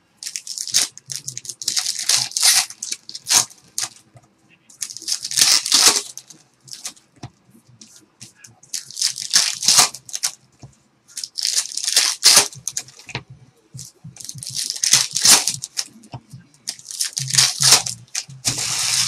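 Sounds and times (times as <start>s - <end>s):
foil wrappers crinkling and tearing: 0.2s - 4.0s, 4.8s - 7.0s, 8.7s - 10.4s, 11.1s - 13.1s, 14.2s - 16.0s, 16.7s - 19.0s.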